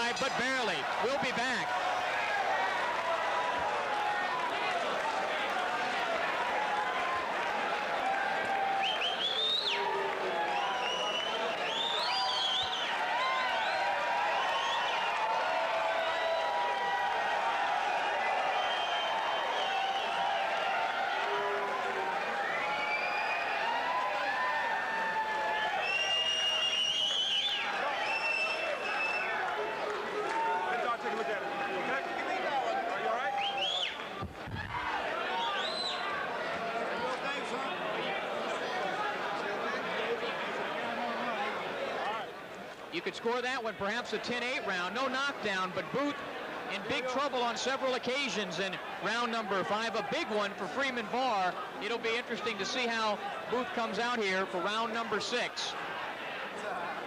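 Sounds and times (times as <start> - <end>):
crowd chattering and calling out: 0.0 - 12.9, 27.6 - 57.0.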